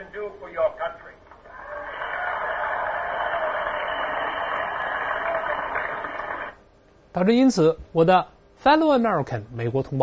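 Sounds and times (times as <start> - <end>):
large crowd applauding: 1.4 - 6.6.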